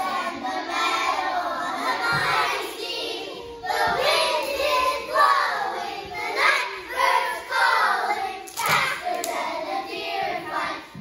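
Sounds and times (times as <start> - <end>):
children singing in unison: 0.0 - 11.0
hand claps: 8.5 - 9.5.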